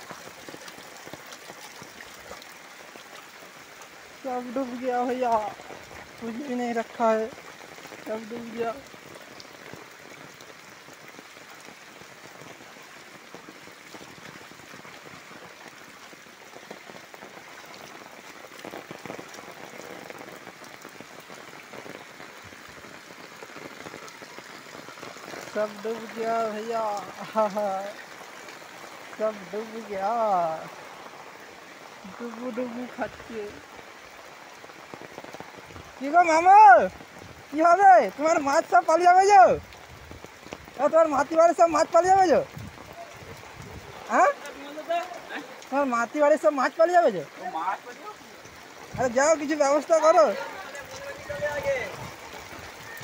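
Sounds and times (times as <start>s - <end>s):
rain falling on water and pavement: 0.0s - 53.0s.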